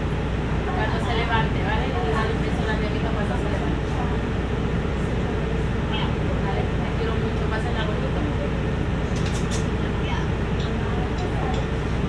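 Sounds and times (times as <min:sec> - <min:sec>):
bus engine humming: 0:00.0 - 0:12.0
passengers talking faintly: 0:00.0 - 0:12.0.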